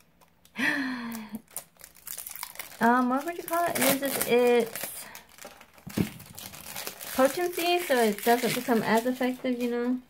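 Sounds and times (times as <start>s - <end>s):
packaging crinkling: 0.0s - 10.0s
person sighing: 0.5s - 1.4s.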